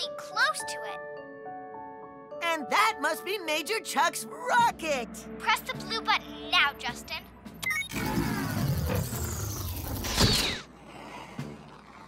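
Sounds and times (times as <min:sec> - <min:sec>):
mechanical stretching sound: 0:07.9 - 0:12.0.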